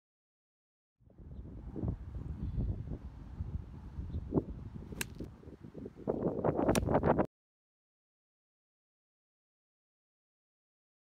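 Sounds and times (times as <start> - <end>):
wind rumbling on microphone: 1.0 - 7.3
golf club striking ball: 4.9 - 5.3, 6.7 - 7.0.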